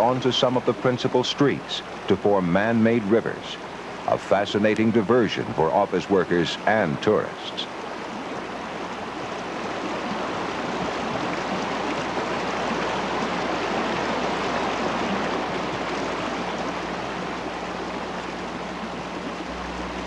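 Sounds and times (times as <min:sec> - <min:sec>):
floodwater rushing: 0:00.0 - 0:20.0.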